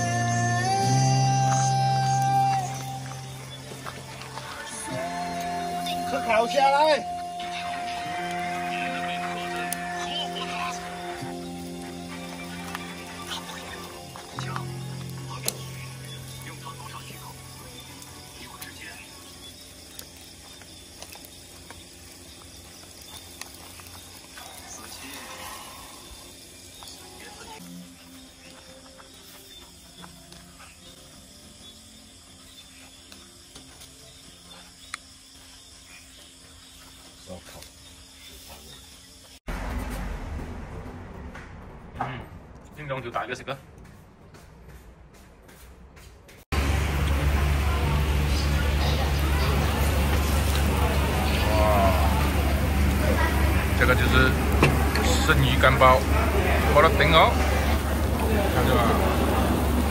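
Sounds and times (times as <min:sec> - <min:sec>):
background music with held notes: 0:00.0 - 0:17.0.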